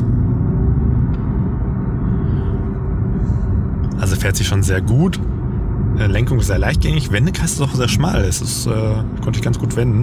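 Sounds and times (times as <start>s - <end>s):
road rumble: 0.0s - 10.0s.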